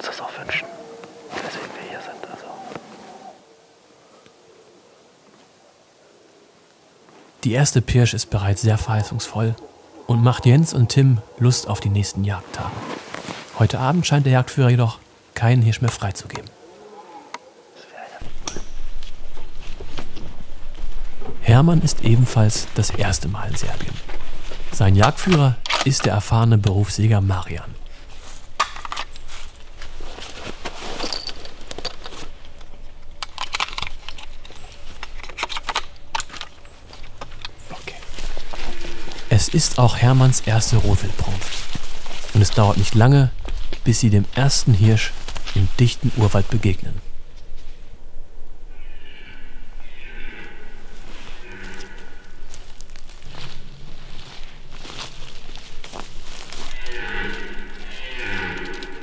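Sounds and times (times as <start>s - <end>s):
footsteps through undergrowth: 0.5s - 3.4s, 11.6s - 13.8s, 18.2s - 25.5s, 27.4s - 32.8s, 33.7s - 48.0s, 50.8s - 59.0s
deer stags roaring: 16.3s - 18.0s, 38.2s - 41.2s, 48.7s - 53.0s, 56.4s - 59.0s
rifle clicks and rattles: 31.1s - 37.6s.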